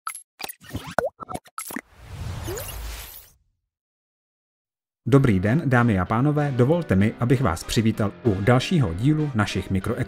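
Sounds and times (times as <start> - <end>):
cartoon pops and plops: 0.4 - 1.9.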